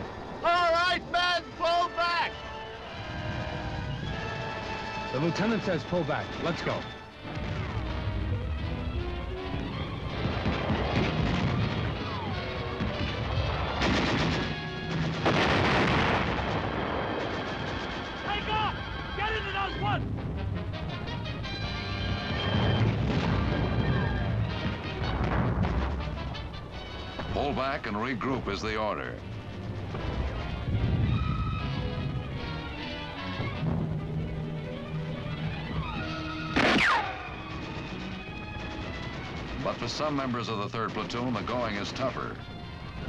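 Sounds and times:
artillery explosions: 3.0 - 43.0
loud blast: 9.5 - 26.3, 36.5 - 40.2
gunfire: 9.6 - 18.5, 21.8 - 26.4, 36.5 - 42.2.

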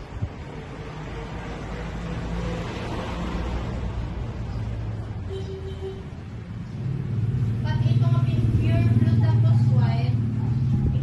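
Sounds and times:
engine rumbling: 0.0 - 11.0
people talking: 7.6 - 11.0.

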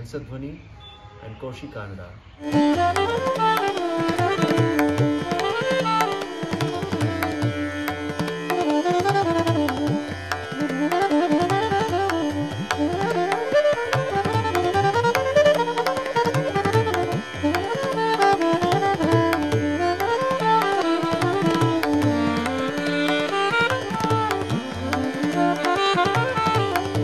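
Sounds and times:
tabla: 1.3 - 27.0
tanpura drone: 1.9 - 27.0
soprano saxophone melody: 2.4 - 27.0.

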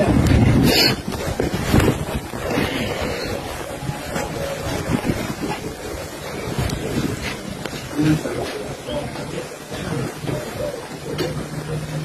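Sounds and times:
wind buffeting microphone: 0.0 - 12.0.

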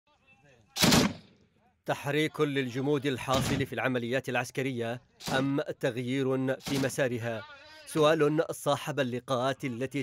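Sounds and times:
machine-gun fire: 0.8 - 1.3.

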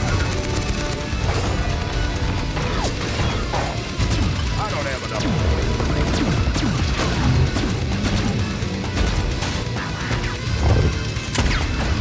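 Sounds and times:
film battle music: 0.0 - 12.0.

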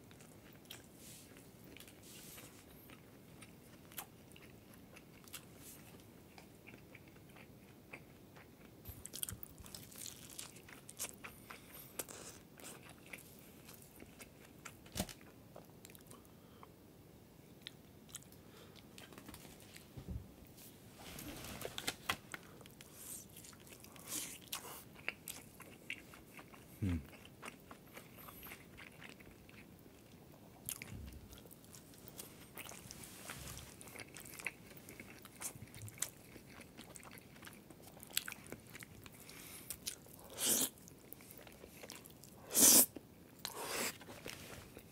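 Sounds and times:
crunchy chewing: 22.3 - 44.9
person humming mmm: 26.8 - 27.1.

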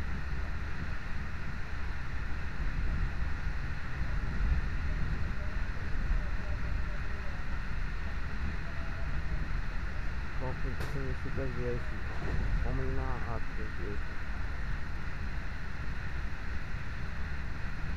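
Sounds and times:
train rumbling at speed: 10.3 - 15.2.

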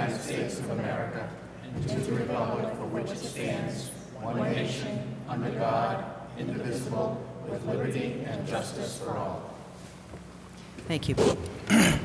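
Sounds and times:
people reciting in unison: 0.0 - 9.8.

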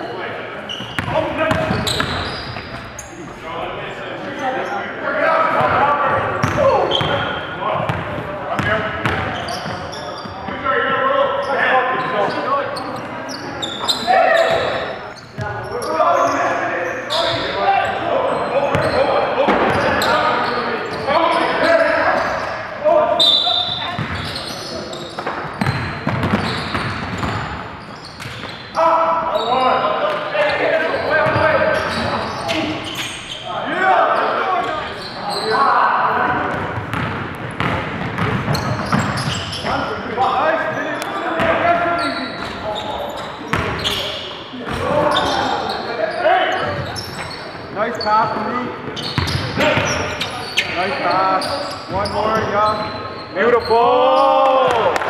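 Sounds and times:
players shouting and talking: 0.0 - 55.0
basketball bouncing on gym floor: 1.0 - 2.7, 7.8 - 9.8, 23.9 - 24.3, 25.2 - 27.6, 36.3 - 39.4.

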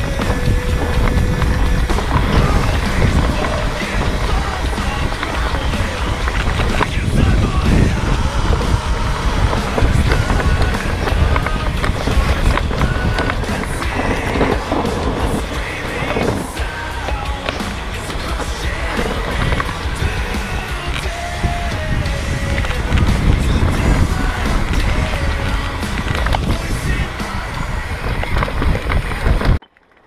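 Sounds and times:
wind on microphone: 0.0 - 29.6
bike rattling over bumps: 0.0 - 30.0
bike tyres rumbling over dirt: 0.0 - 30.0.

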